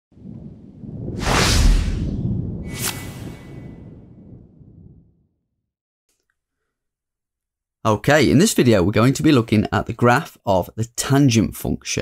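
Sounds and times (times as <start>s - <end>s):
low rumble into whoosh: 0.1s - 5.3s.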